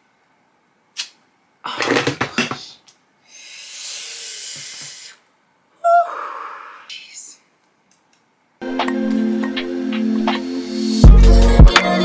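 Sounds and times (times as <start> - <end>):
woman hissing: 3.3 - 5.2, 5.8 - 7.4
woman's high-pitched cry: 5.8 - 6.3
woman gasping: 5.8 - 6.9.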